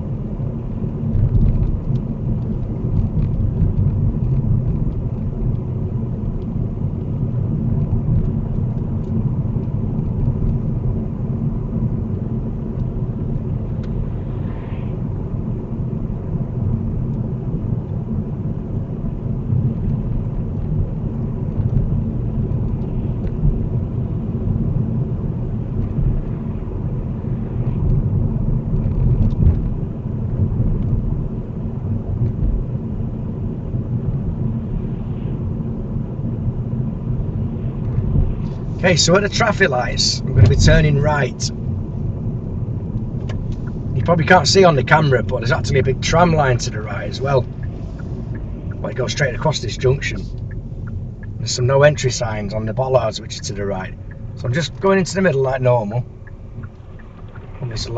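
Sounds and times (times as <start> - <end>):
car interior road rumble: 0.0 - 57.9.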